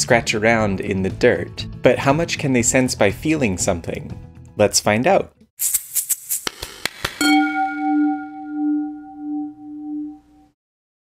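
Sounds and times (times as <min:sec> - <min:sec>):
ringing bell-like tone: 0:07.2 - 0:10.6.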